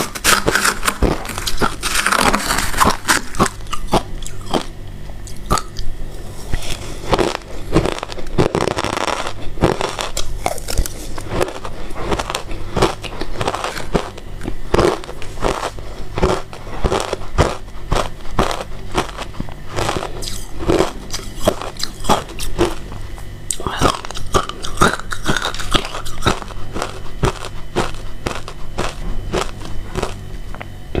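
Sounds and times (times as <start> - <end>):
chewing crunchy ice: 0.0 - 30.3.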